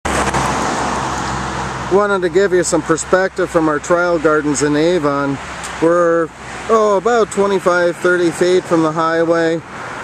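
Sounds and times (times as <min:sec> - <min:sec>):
highway traffic noise: 0:00.0 - 0:10.0
vehicle passing close by: 0:00.1 - 0:10.0.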